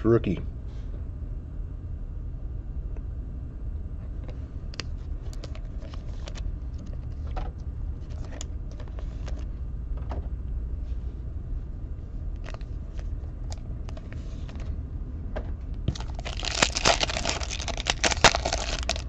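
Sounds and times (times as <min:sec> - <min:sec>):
steady low hum: 0:00.0 - 0:19.0
cards clicking and rustling: 0:04.8 - 0:09.5, 0:15.9 - 0:19.0.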